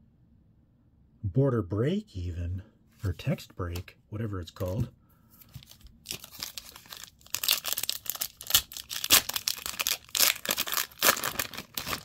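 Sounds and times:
plastic wrapper tearing and crinkling: 0:05.5 - 0:12.0.

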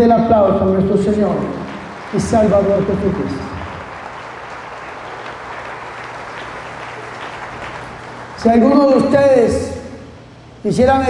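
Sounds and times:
crowd applauding: 0:00.8 - 0:09.4.

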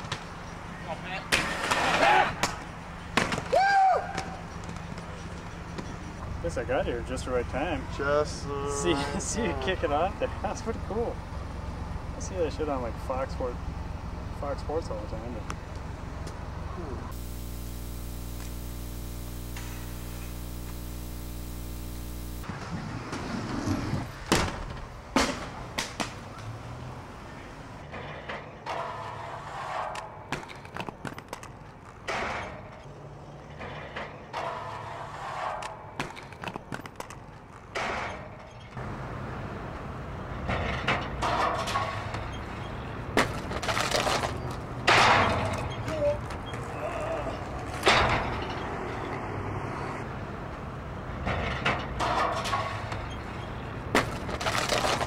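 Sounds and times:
inline skates rolling and grinding: 0:01.3 - 0:02.4, 0:22.4 - 0:26.7, 0:27.3 - 0:38.7, 0:43.2 - 0:47.8, 0:52.7 - 0:55.0
skates clacking on rails: 0:27.8 - 0:32.9, 0:33.5 - 0:38.6.

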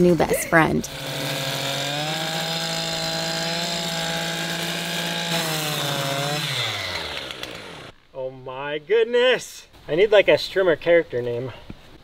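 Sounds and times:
strimmer cutting grass: 0:00.1 - 0:08.0.

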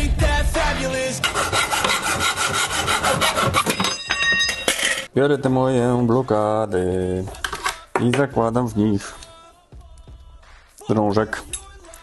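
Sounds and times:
background music: 0:00.0 - 0:03.7, 0:05.1 - 0:12.0
hacksaw cutting metal rod: 0:01.2 - 0:04.0.

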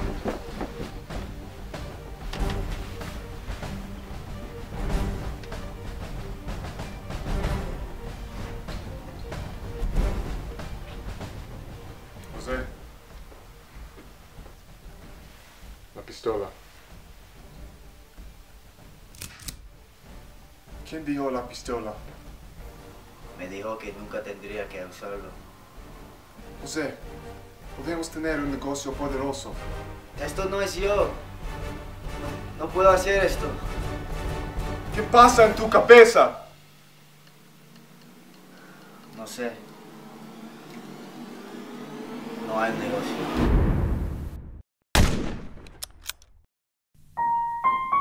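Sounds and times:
low hum: 0:00.0 - 0:16.0, 0:36.5 - 0:44.6
low room tone: 0:00.0 - 0:43.4
handgun cocking clicks: 0:19.1 - 0:19.6, 0:45.6 - 0:46.3.

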